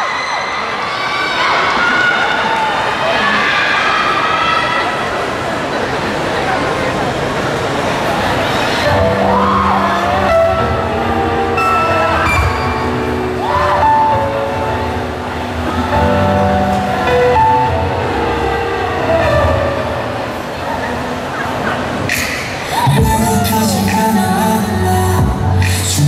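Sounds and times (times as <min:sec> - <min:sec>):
slow music over loudspeakers: 0:08.6 - 0:26.0.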